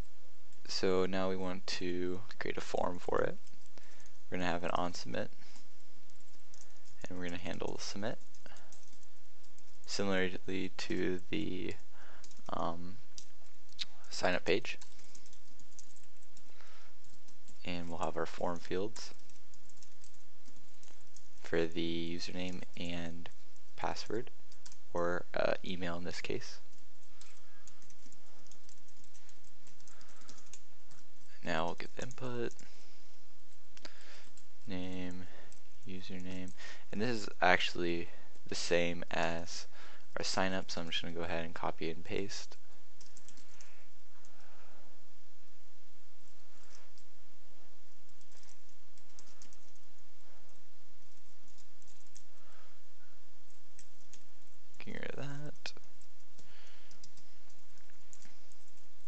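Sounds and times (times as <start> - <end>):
typing on keyboard: 5.5 - 7.0, 7.6 - 9.9, 11.7 - 13.8, 14.5 - 21.4, 25.9 - 32.7, 43.0 - 43.7, 48.1 - 49.8, 51.0 - 52.6, 53.5 - 58.9.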